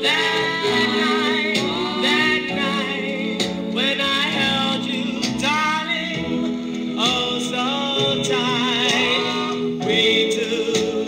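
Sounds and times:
vocal group record: 0:00.0 - 0:11.0.

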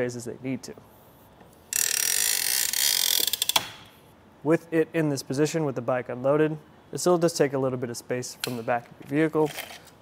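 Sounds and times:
bike rack ratchet clicking: 0:01.7 - 0:03.9.

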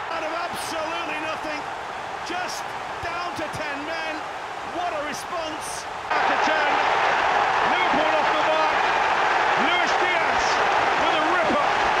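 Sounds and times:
stadium crowd roaring: 0:00.0 - 0:12.0.

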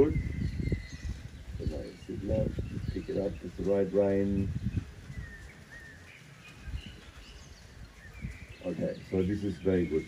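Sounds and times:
faint birdsong chirps: 0:00.0 - 0:10.0
horse hooves on sand: 0:00.0 - 0:10.0.

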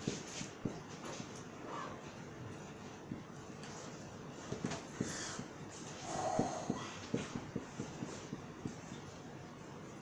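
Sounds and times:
marker tapping on whiteboard: 0:04.5 - 0:05.4, 0:06.2 - 0:09.1.

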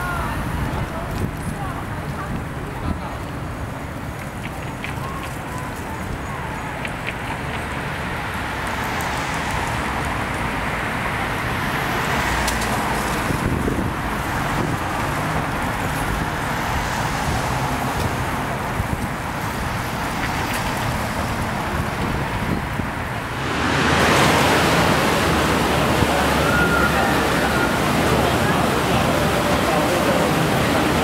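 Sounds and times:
road traffic: 0:00.0 - 0:31.0.

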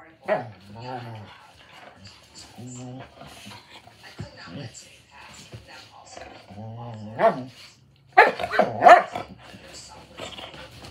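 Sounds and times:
dog yowling barks: 0:08.2 - 0:09.3.

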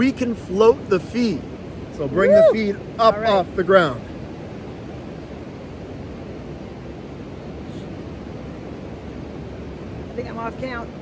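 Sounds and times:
ocean surf: 0:00.0 - 0:11.0
wind: 0:00.0 - 0:11.0.

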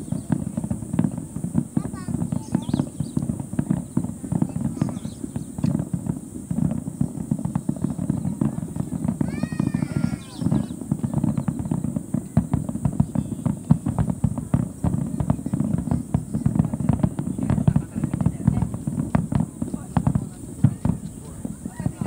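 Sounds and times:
fireworks crackling: 0:00.0 - 0:22.0.

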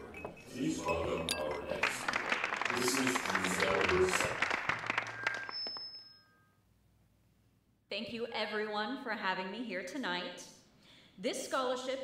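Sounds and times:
high ringing tone: 0:00.0 - 0:01.9, 0:04.8 - 0:06.7
glasses clinking: 0:00.0 - 0:03.6, 0:04.9 - 0:06.5.

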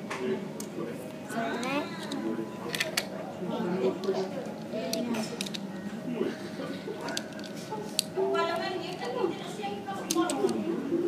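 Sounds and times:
plastic toy bricks clicking: 0:04.9 - 0:05.6, 0:10.1 - 0:10.6.

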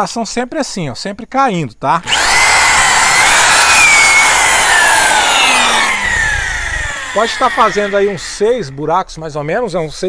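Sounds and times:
electric drill boring into wood: 0:02.0 - 0:08.9.

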